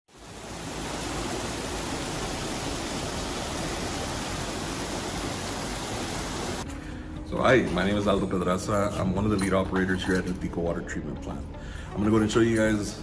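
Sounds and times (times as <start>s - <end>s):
water rushing over weirs: 0.1s - 6.7s.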